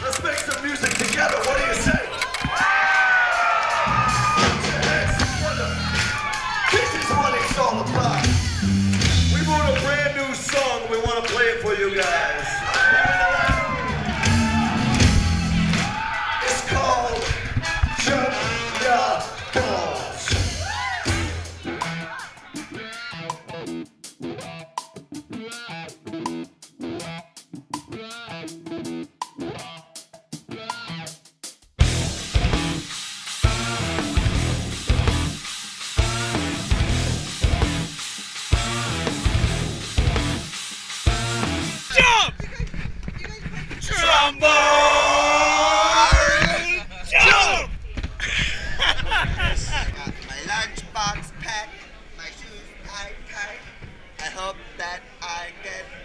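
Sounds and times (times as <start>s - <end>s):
people shouting: 0.0s - 8.9s, 12.1s - 22.8s, 43.8s - 47.7s
drums steady beat: 2.2s - 42.9s
live band playing loud: 3.7s - 6.0s, 7.0s - 10.0s, 20.3s - 41.9s.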